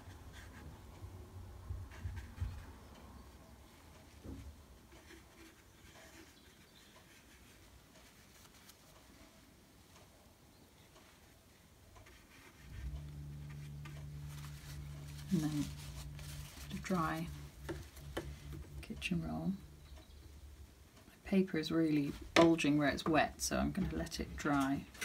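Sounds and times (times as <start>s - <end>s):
brush on paper: 3.9s - 9.4s, 12.0s - 19.1s
steady low hum: 7.2s - 25.0s
woman's voice: 15.3s - 15.8s, 16.6s - 17.5s, 18.8s - 19.7s, 21.1s - 25.0s.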